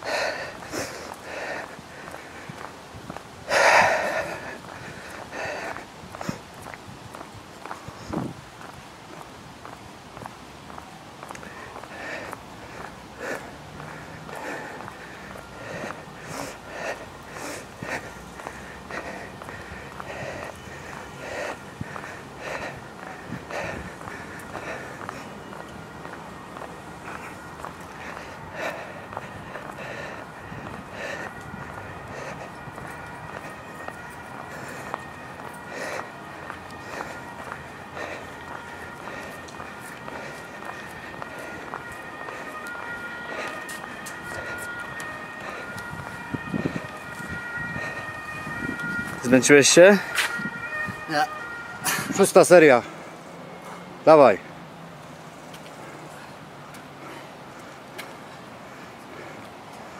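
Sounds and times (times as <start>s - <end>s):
man breathing hard: 0.0s - 6.5s, 11.3s - 50.8s, 55.7s - 59.9s
footsteps on paving stones: 0.0s - 54.4s, 55.0s - 59.9s.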